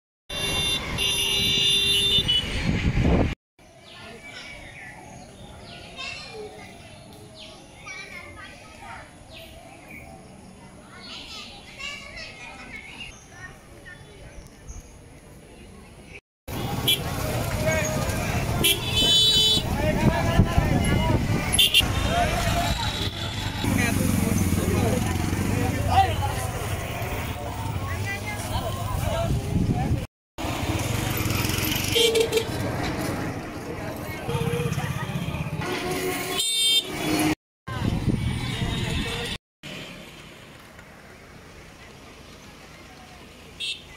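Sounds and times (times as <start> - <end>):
vehicle horn honking: 0.3 - 2.6, 18.6 - 19.7, 21.5 - 22.2, 31.9 - 32.5, 34.3 - 37.4
vehicle engines: 0.3 - 43.9
crowd chatter: 3.8 - 30.1, 32.2 - 36.1
passing motor traffic: 16.5 - 43.9.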